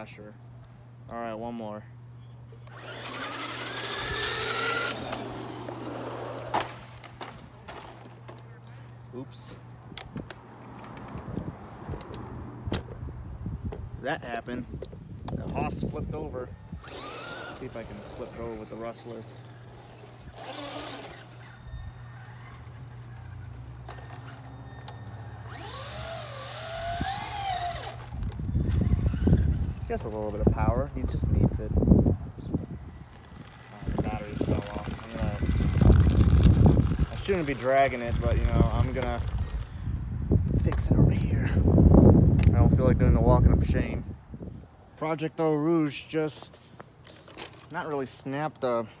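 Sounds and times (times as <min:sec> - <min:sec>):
steady low hum: 0:00.0 - 0:45.0
rc truck electric motors whining: 0:02.5 - 0:08.1, 0:15.7 - 0:30.4, 0:32.6 - 0:39.9.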